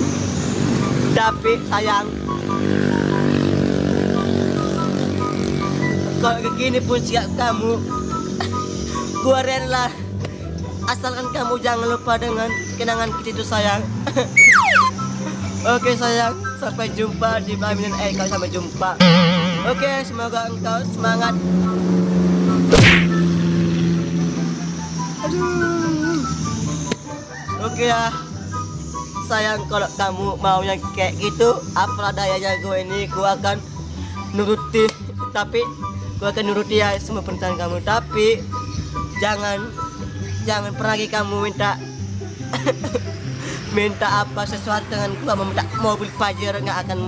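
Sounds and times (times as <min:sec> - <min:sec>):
faint short high notes: 0:19.0 - 0:20.4
engine running steadily: 0:19.0 - 0:24.9.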